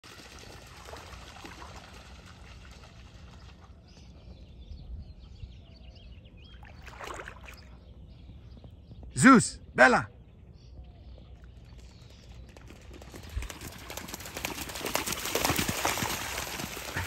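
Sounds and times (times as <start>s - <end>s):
water splashing and trickling: 0.0s - 4.0s, 6.5s - 7.8s, 12.7s - 17.0s
small birds chirping: 0.2s - 17.0s.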